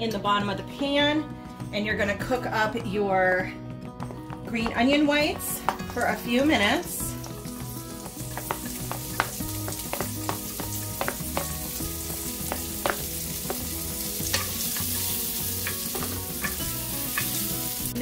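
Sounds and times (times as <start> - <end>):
onions sizzling in a pan: 6.8 - 18.0.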